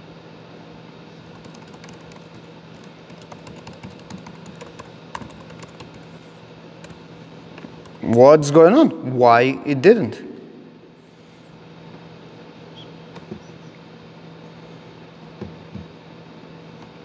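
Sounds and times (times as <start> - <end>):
steady low hum: 0.0 - 17.0
typing on laptop keyboard: 1.3 - 6.2, 6.8 - 7.0.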